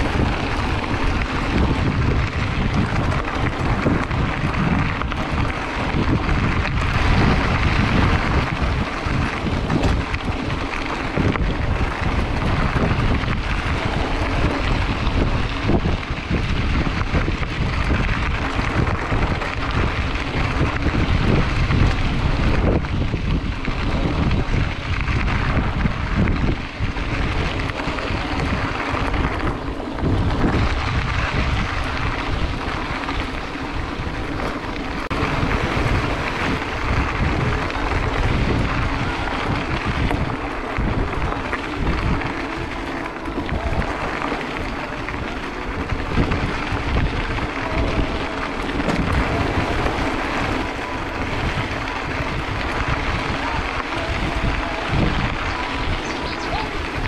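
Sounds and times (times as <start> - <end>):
tyres rolling over gravel: 0.0 - 57.0
wind buffeting microphone: 0.0 - 57.0.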